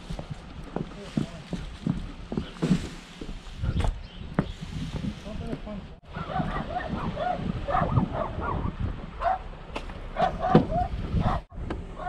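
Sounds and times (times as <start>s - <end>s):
wind on microphone: 3.2s - 9.4s, 10.2s - 11.9s
dog barking: 6.1s - 9.5s, 10.2s - 12.0s.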